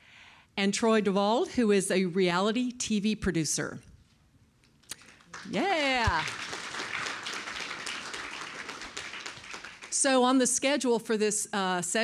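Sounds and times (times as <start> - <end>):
audience applauding: 5.0 - 10.0.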